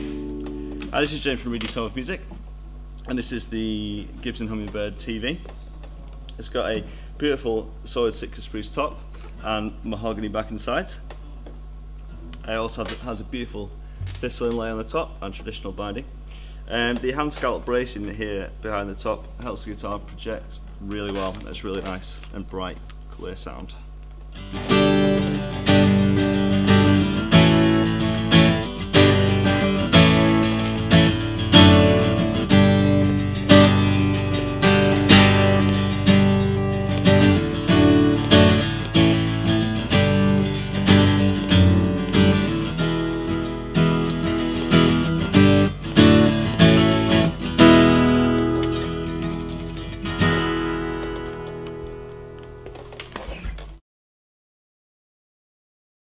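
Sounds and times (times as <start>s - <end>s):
acoustic guitar strummed chords: 0.0s - 1.8s, 24.3s - 53.2s.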